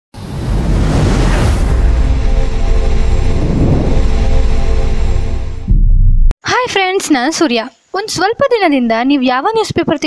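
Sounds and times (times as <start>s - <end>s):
deep steady rumble: 0.4s - 6.4s
held low tones: 1.8s - 6.3s.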